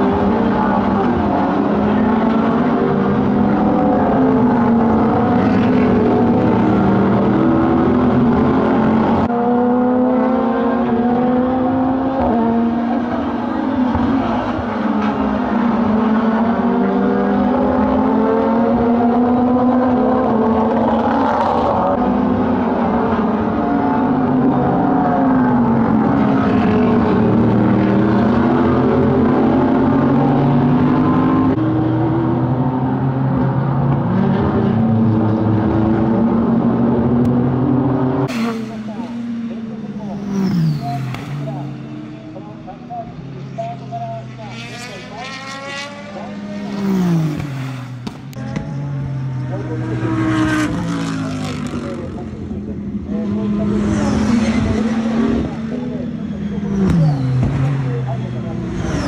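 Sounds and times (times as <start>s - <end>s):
race car engines in a pack: 0.0s - 59.0s
race cars passing by: 0.0s - 59.0s.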